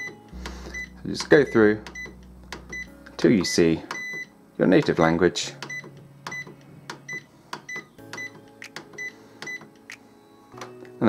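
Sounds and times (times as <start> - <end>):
printer button clicks and beeps: 0.0 - 5.0, 5.6 - 9.7.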